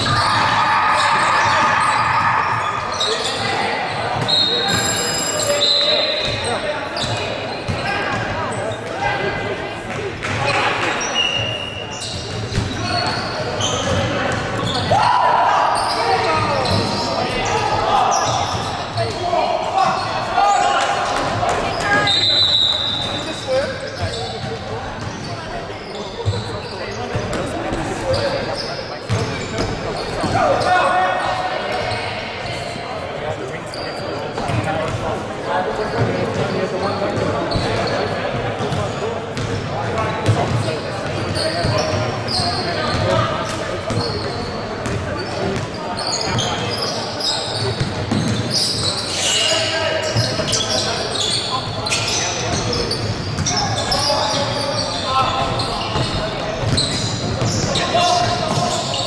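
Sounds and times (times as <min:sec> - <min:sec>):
ball bouncing on wooden court: 0:55.4 - 0:58.8.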